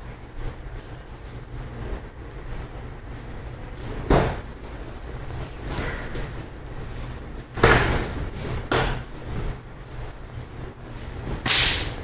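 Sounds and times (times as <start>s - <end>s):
sharp smack of gloved punch: 11.5s - 12.0s.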